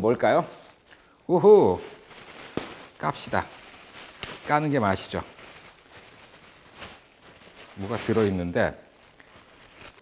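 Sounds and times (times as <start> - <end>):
plastic wrapping crinkling: 0.0 - 10.0.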